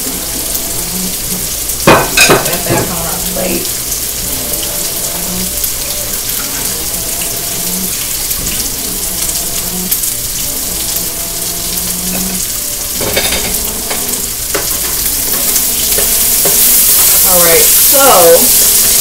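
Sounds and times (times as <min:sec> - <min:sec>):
chicken sizzling in oil: 0:00.0 - 0:19.0.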